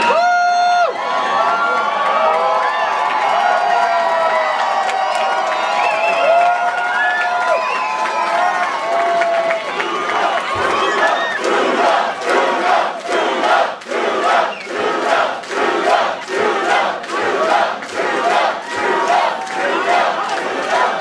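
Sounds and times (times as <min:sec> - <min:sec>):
crowd cheering and chanting: 0:00.0 - 0:21.0.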